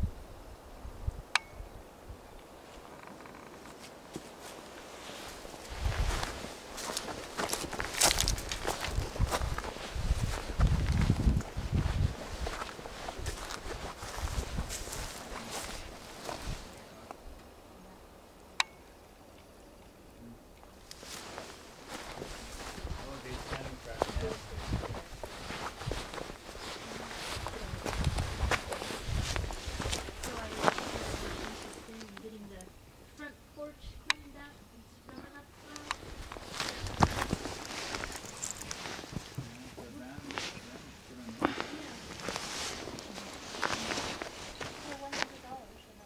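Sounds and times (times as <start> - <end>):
footsteps on stony dirt: 3.7 - 16.8, 20.9 - 32.4, 35.2 - 40.6, 41.4 - 45.7.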